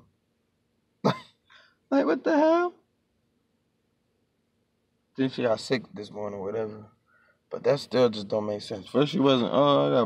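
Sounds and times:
man coughing: 0:01.0 - 0:01.6
short breath: 0:01.5 - 0:01.9, 0:07.0 - 0:07.5.

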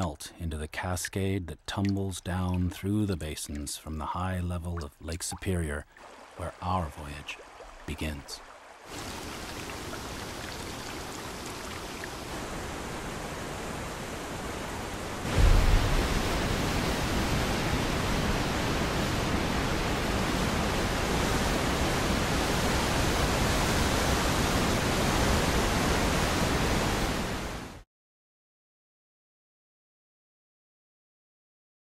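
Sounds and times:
waterfall rushing: 0:06.0 - 0:27.7.

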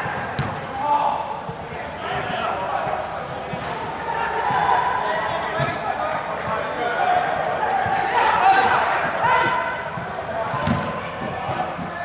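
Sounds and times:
players shouting and calling: 0:00.0 - 0:12.0.

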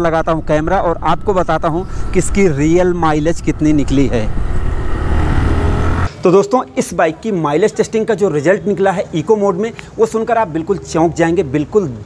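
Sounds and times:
motorcycle engine running: 0:00.0 - 0:06.1
wind rumble on microphone: 0:00.0 - 0:06.1.

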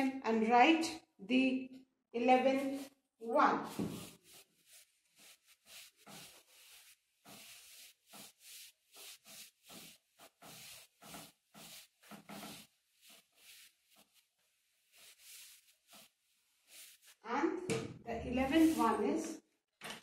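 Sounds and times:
duster wiping chalk off blackboard: 0:02.3 - 0:17.2, 0:18.2 - 0:19.1.

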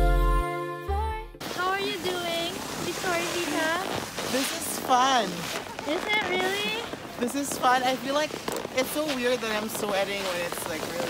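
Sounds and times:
background music: 0:00.0 - 0:01.4.

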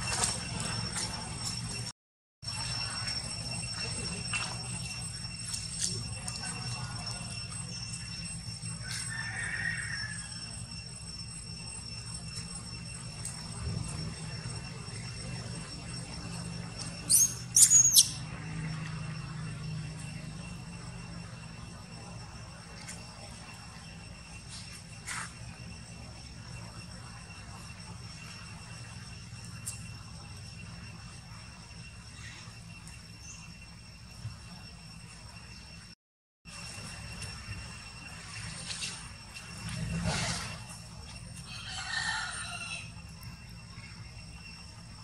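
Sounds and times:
faint high-pitched drone: 0:00.0 - 0:45.0
monkey squealing: 0:17.1 - 0:18.2.

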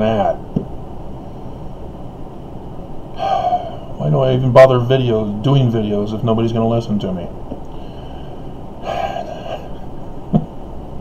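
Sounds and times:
man breathing: 0:03.1 - 0:04.0, 0:07.7 - 0:10.2.

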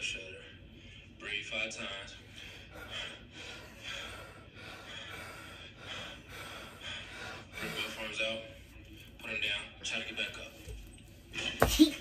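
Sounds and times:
deep breathing: 0:02.1 - 0:08.7.

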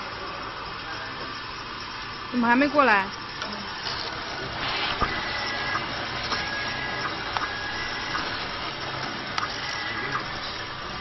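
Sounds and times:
labelling machine mechanical hiss: 0:00.0 - 0:11.0.

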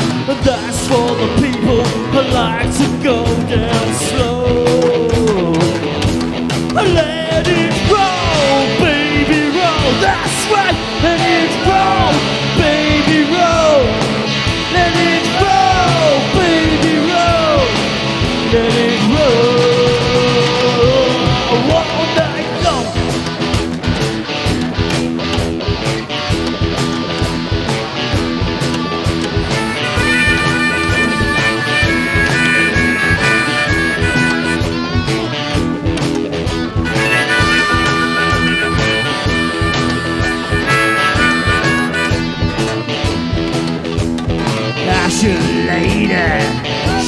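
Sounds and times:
blues-rock band playing: 0:00.0 - 0:47.0
high lead guitar melody: 0:00.0 - 0:47.0.

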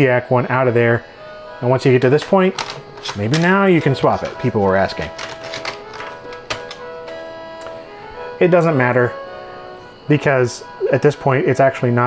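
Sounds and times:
synthesized midi notes: 0:00.0 - 0:12.0.

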